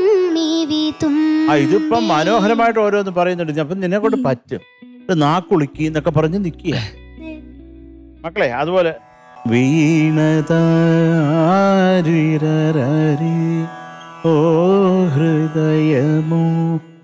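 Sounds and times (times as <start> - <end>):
man singing unaccompanied: 1.1 - 3.1, 4.0 - 4.5, 9.4 - 17.0.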